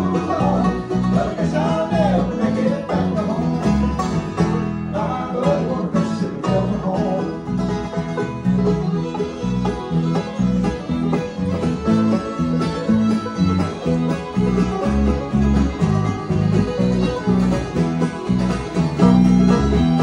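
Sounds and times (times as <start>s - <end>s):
acoustic guitar: 0.0s - 20.0s
banjo: 0.0s - 20.0s
electric bass line: 0.0s - 20.0s
fiddle: 0.0s - 20.0s.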